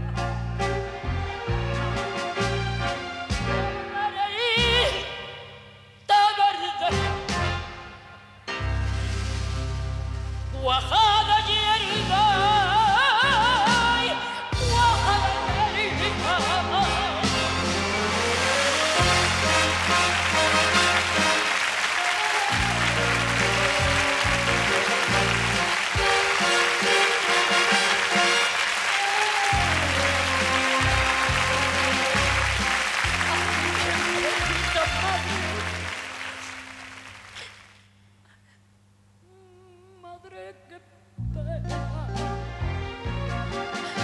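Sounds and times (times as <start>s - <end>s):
band playing: 0.0s - 5.1s, 6.9s - 37.4s, 41.6s - 44.0s
audience applauding: 17.8s - 38.0s.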